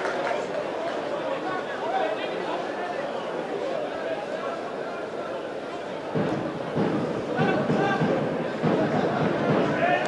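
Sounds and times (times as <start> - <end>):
football crowd shouting and chanting: 4.6 - 10.0.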